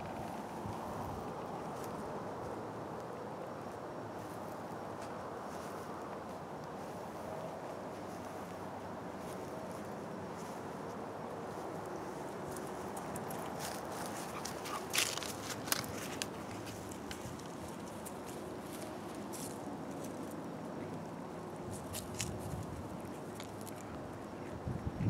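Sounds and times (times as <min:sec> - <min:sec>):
wind noise on microphone: 0:00.0 - 0:01.9, 0:21.6 - 0:25.0
dry grass crackling and rustling: 0:00.0 - 0:24.3.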